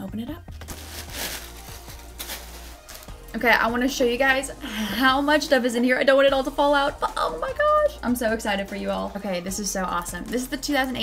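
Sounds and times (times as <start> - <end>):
soft background music: 0.0 - 11.0
cardboard box contents rustling: 0.6 - 3.1.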